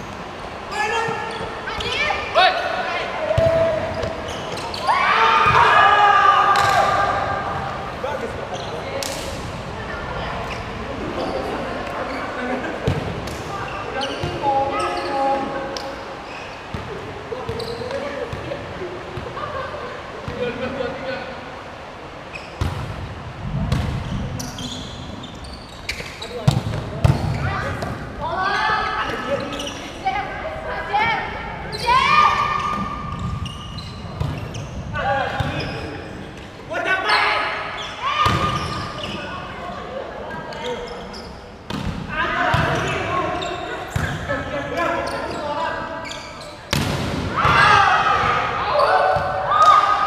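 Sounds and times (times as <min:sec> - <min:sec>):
players shouting: 0:00.7 - 0:07.9, 0:30.2 - 0:33.1, 0:47.2 - 0:50.0
volleyball slaps: 0:06.5 - 0:07.0, 0:38.2 - 0:38.6, 0:41.7 - 0:42.8, 0:46.7 - 0:49.4.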